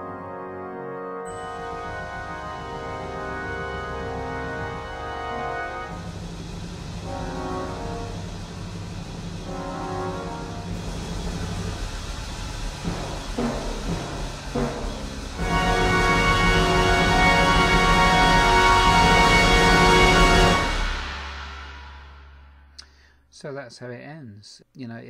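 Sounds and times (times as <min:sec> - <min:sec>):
brass band playing held chords: 0:00.0 - 0:22.4.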